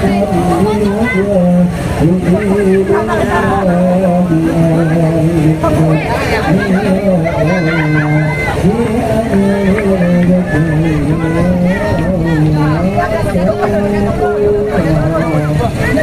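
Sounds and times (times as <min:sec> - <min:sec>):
crowd rumble: 0:00.0 - 0:16.0
man chanting through loudspeaker: 0:00.0 - 0:16.0.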